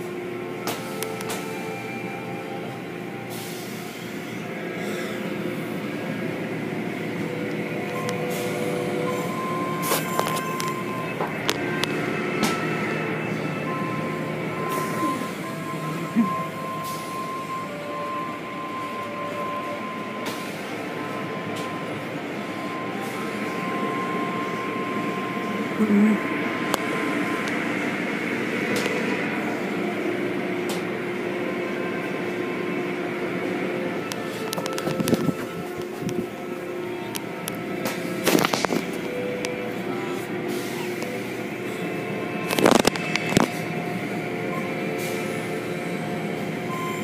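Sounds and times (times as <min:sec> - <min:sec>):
motors humming: 0:00.0 - 0:47.0.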